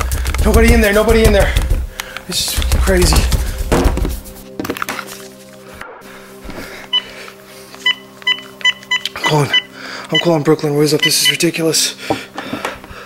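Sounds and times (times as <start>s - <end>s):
phone keypad beeps: 7.8s - 10.3s.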